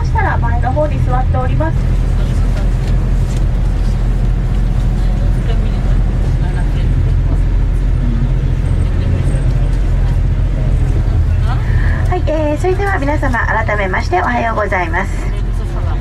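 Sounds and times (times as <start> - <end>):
bus engine and road rumble: 0.0 - 16.0.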